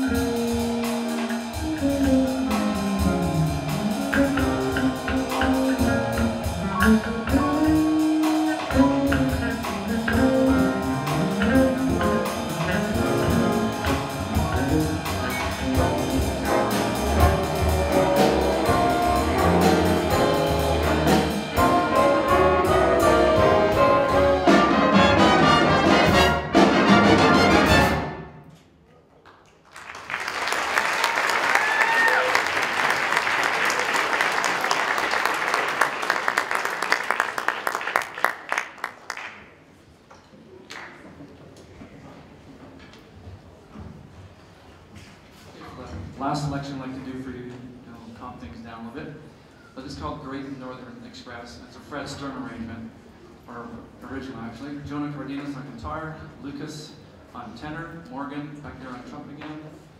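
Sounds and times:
jazz big band playing: 0.0 - 28.5
audience applauding: 29.2 - 39.6.

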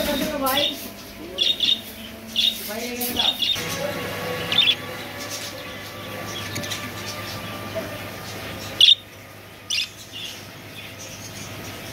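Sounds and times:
budgerigars chirping: 0.0 - 3.7, 4.3 - 11.9
steady background hum: 0.0 - 11.9.

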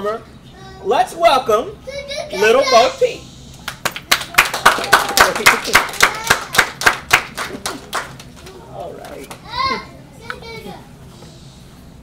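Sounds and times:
children's high-pitched calls: 1.8 - 3.2, 5.9 - 6.7.

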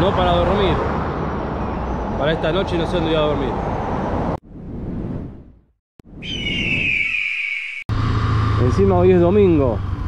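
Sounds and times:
eagle-like screech: 6.2 - 8.6.

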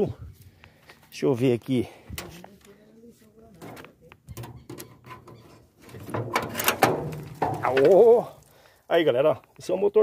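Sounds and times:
car hood latch clicks and clunks: 5.9 - 7.6.

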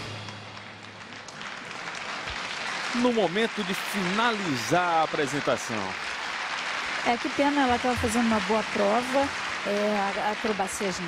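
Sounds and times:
crowd applauding: 0.0 - 11.0.

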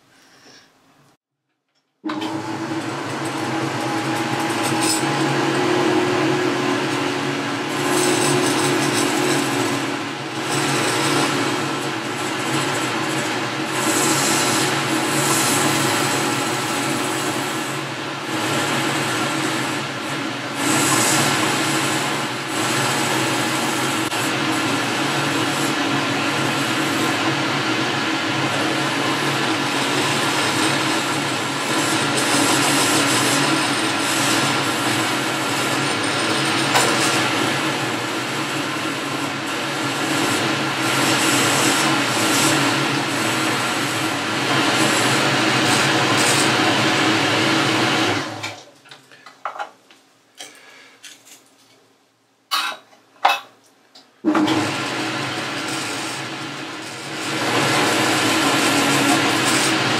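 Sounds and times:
metal lathe humming: 2.1 - 48.5, 54.5 - 59.9
cutting tool hissing: 2.6 - 48.4, 54.5 - 59.9.

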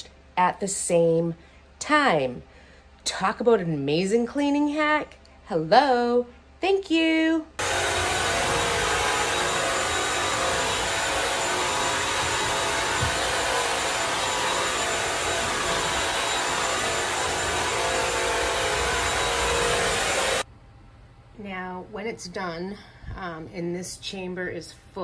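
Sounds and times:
faint high whine: 7.6 - 20.4
vacuum motor and suction: 7.6 - 20.4.

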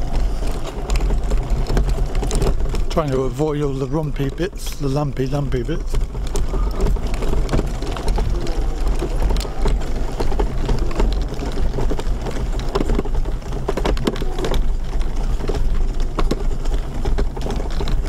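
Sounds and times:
wheelchair frame rattling: 0.0 - 18.0
wheels crunching on grit: 0.0 - 18.0.

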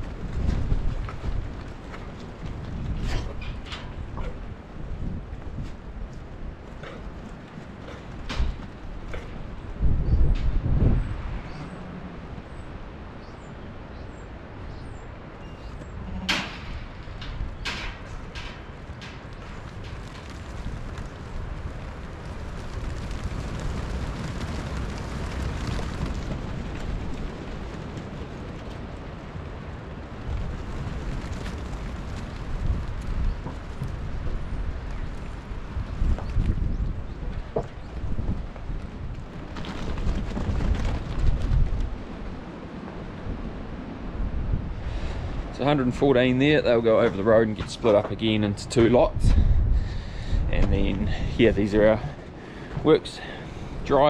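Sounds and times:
sheep hooves on gravel: 0.0 - 9.8, 17.5 - 42.5, 45.7 - 49.3
wind buffeting microphone: 0.0 - 54.0.

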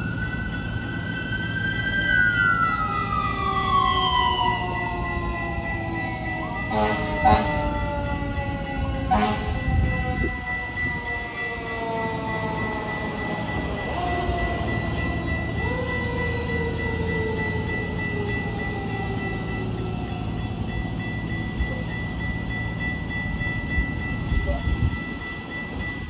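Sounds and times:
train horn: 6.4 - 11.0.

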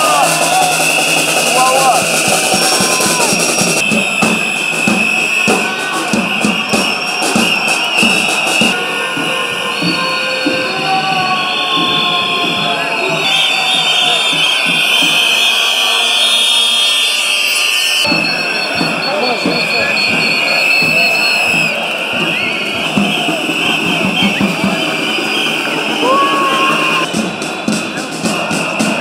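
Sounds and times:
protest crowd voices: 0.0 - 29.0.

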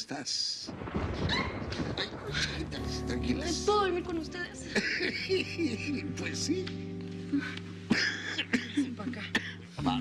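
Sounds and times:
soft background music: 2.3 - 10.0.

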